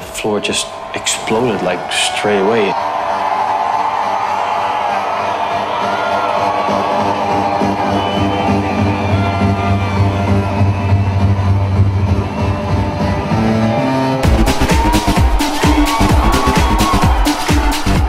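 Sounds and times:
crowd cheering: 0.0s - 18.0s
synth bass: 8.9s - 18.0s
held synth chords: 13.3s - 18.0s.

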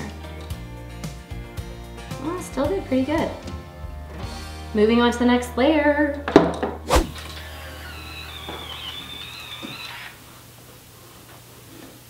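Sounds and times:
hair curler motor whining: 7.1s - 10.2s.

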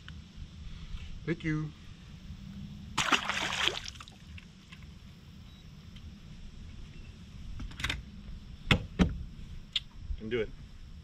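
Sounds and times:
low steady rumble: 0.0s - 11.0s
water splash: 3.0s - 4.2s.

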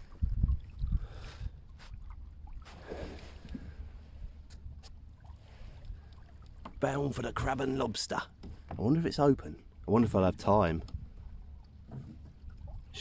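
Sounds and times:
water lapping on wooden hull: 0.0s - 13.0s.

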